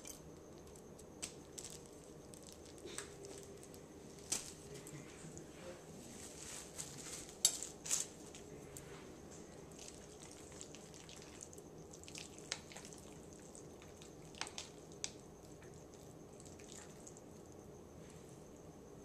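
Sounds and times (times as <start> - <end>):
wet clicks and squishes of hands: 13.6 - 15.9.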